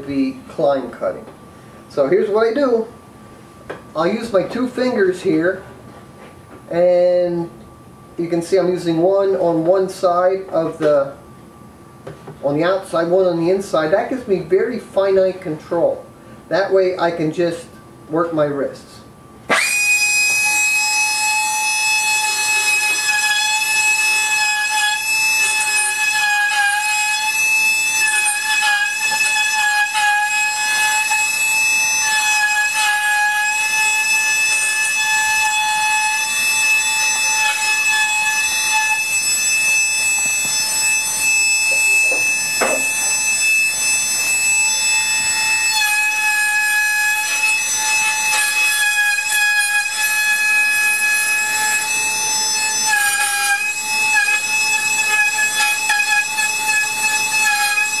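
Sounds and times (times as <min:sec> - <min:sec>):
die grinder whining: 0:19.5 - 0:58.0.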